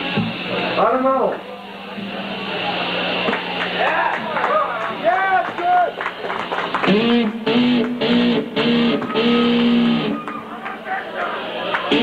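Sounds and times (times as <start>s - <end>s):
electric guitar sliding notes: 6.7s - 12.0s.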